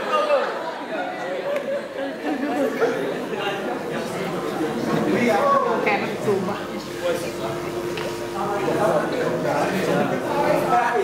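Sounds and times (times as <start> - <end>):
overlapping chatter of a group: 0.0 - 11.0.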